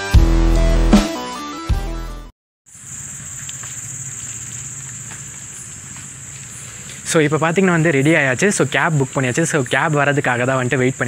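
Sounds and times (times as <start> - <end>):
crickets chirring: 2.7 - 11.0.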